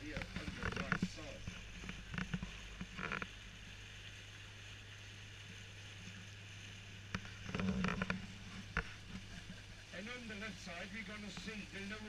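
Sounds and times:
boat motor humming: 0.0s - 12.0s.

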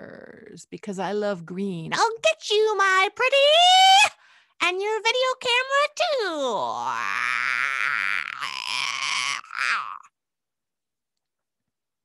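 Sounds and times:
woman screeching: 6.3s - 10.1s.

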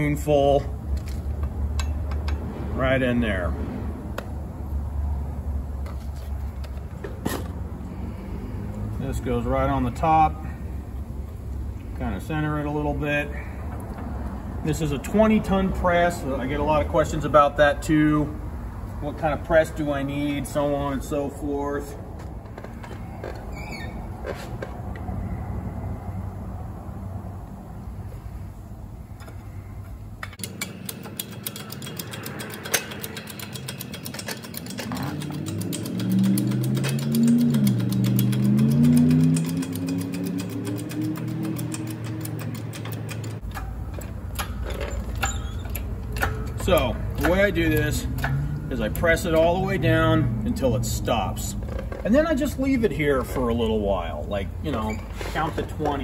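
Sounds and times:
hydraulic jack pumping clicks: 30.2s - 49.4s.

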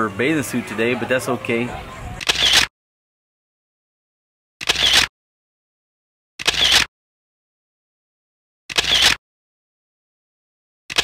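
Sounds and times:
camera shutter click: 2.2s - 2.7s, 4.6s - 5.1s, 6.4s - 6.9s, 8.7s - 9.2s.

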